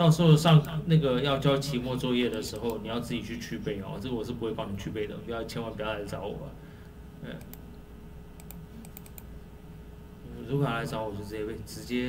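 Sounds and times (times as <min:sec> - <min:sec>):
faint steady low hum: 0:00.0 - 0:12.0
mouse and keyboard clicks: 0:08.4 - 0:09.3.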